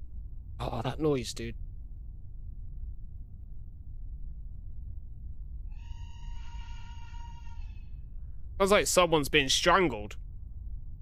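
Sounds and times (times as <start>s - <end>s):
high strained wavering cry: 5.7s - 8.0s.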